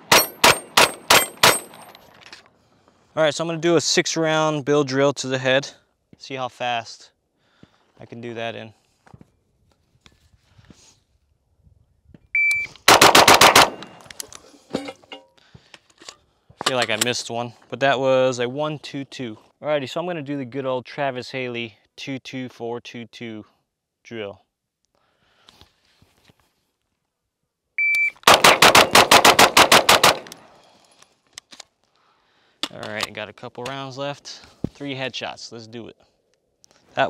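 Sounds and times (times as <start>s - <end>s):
rapid pistol shots: 0.0s - 1.8s, 12.9s - 14.0s, 28.2s - 30.5s
shot timer beep: 12.4s - 12.8s, 27.8s - 28.2s
faint metallic clinks: 14.6s - 16.2s.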